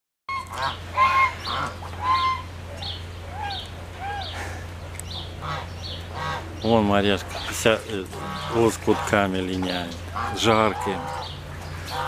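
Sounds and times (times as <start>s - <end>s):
birds calling: 0.3s - 12.0s
steady low hum: 0.3s - 12.0s.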